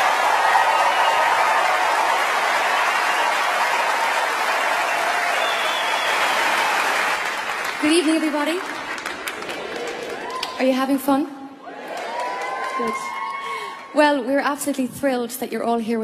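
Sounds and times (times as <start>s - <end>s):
audience applauding: 0.0s - 10.7s, 11.6s - 13.9s.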